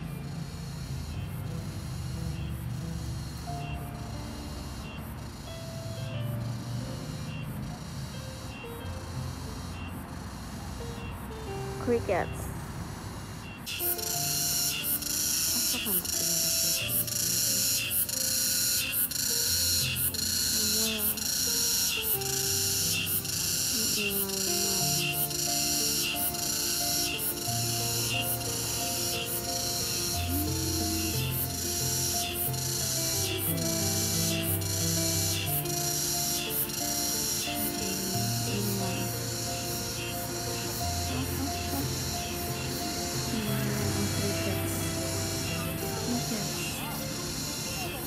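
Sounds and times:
background music with sustained notes: 0.0s - 48.0s
crickets chirping: 0.0s - 48.0s.

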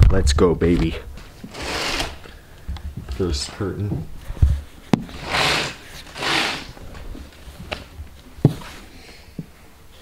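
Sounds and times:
curtain pulled along rod: 5.1s - 7.0s.

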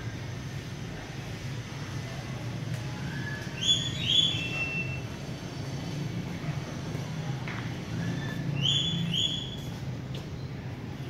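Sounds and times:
low rumble of city traffic: 0.0s - 11.0s.

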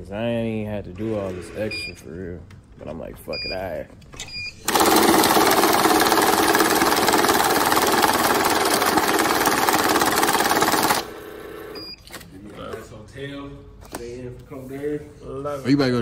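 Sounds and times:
banknote counting machine riffling: 4.6s - 11.8s.

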